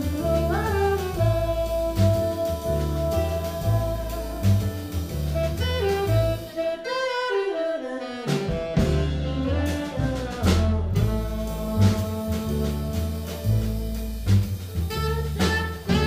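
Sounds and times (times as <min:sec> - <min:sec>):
double bass: 0:00.0 - 0:06.8, 0:08.0 - 0:16.0
drum kit: 0:00.0 - 0:06.9, 0:08.2 - 0:16.0
piano: 0:00.0 - 0:16.0
saxophone: 0:00.0 - 0:16.0.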